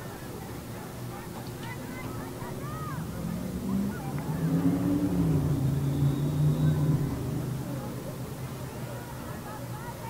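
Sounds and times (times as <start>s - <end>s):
motor vehicle engine droning: 2.0s - 8.7s.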